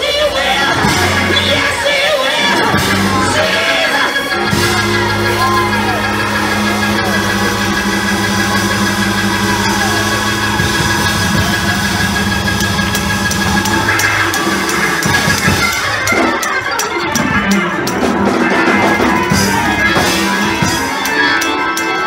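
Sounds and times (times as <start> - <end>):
live church praise music: 0.0 - 22.0
voices calling out: 0.0 - 22.0
low held chord: 4.5 - 15.0.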